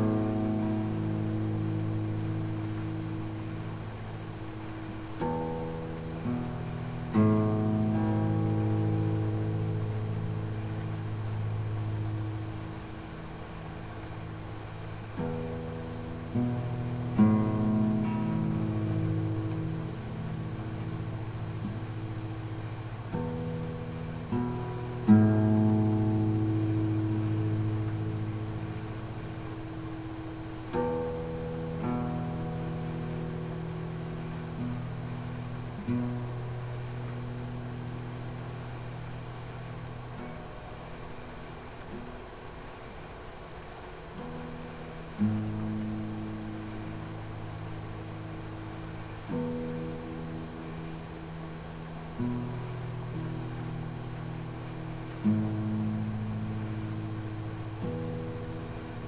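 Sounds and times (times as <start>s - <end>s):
acoustic guitar strummed slowly: 0.0s - 59.0s.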